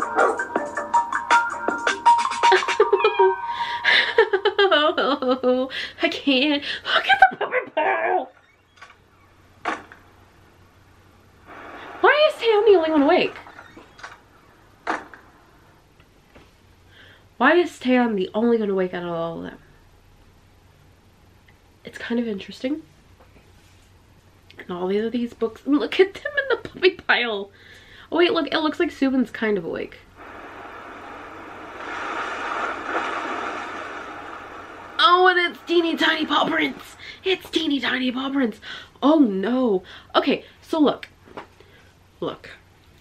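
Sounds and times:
surf washing on a beach: 30.2 - 36.5
short noisy burst: 30.2 - 37.2.

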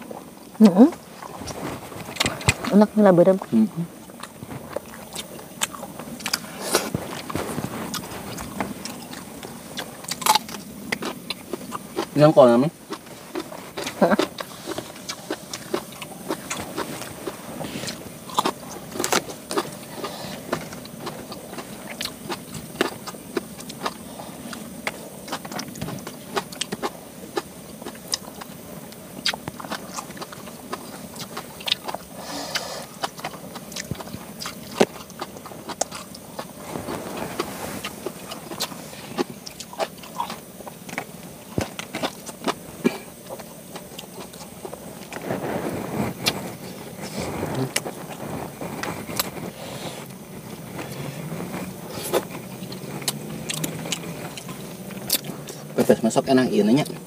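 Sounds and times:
low background noise: 0.0 - 57.0
people eating with clicks and taps: 0.6 - 56.2
rustling: 0.9 - 10.8, 12.9 - 26.5, 32.0 - 55.9.

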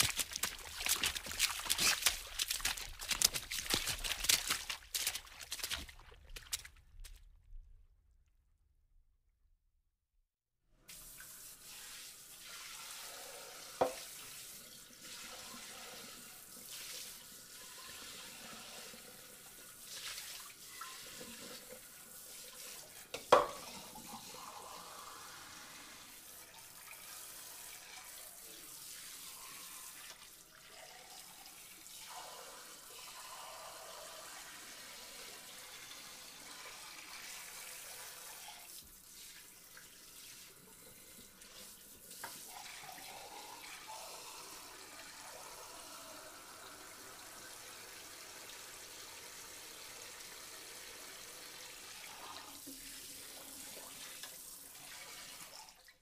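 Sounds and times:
water running and splashing: 0.0 - 7.2.

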